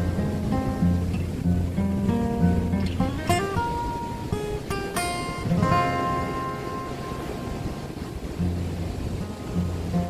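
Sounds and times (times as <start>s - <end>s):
acoustic guitar chord: 0.0s - 10.0s.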